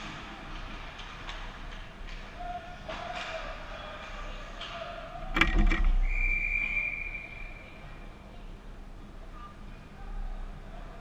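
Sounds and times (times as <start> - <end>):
referee's whistle blast: 6.0 - 7.7.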